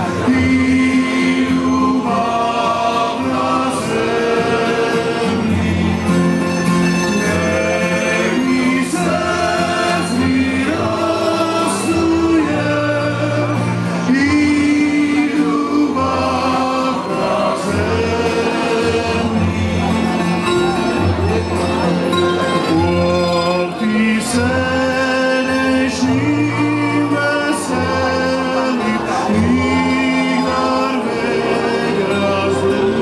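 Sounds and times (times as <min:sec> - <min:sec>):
acoustic guitars: 0:00.0 - 0:33.0
double bass: 0:00.0 - 0:33.0
male vocal ensemble singing: 0:00.0 - 0:33.0.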